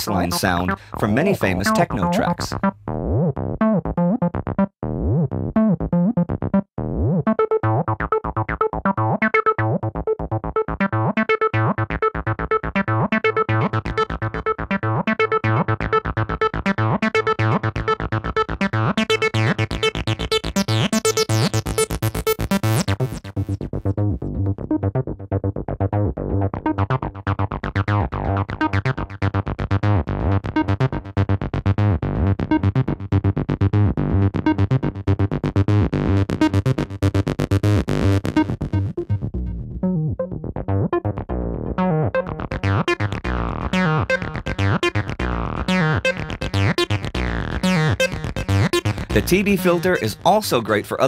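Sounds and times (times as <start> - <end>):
squelchy synthesizer bassline: 0.0 - 51.0.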